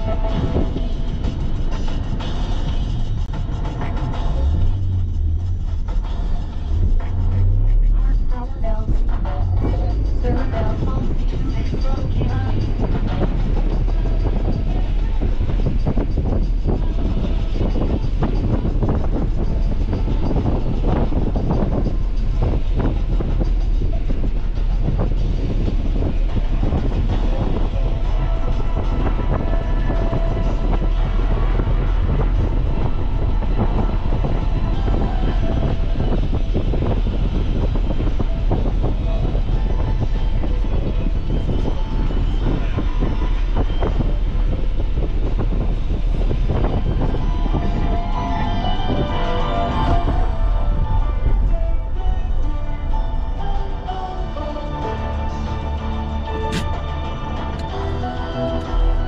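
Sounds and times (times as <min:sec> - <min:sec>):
faint car radio music: 0:00.0 - 0:59.0
road and engine rumble: 0:00.0 - 0:59.0.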